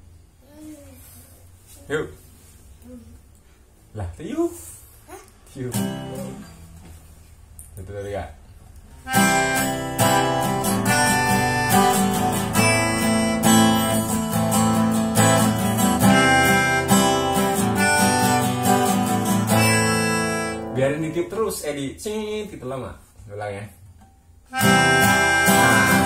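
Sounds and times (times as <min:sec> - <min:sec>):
acoustic guitar strumming: 0:05.7 - 0:06.8, 0:09.0 - 0:21.2, 0:24.0 - 0:26.0
melodica: 0:09.1 - 0:20.8, 0:24.5 - 0:26.0.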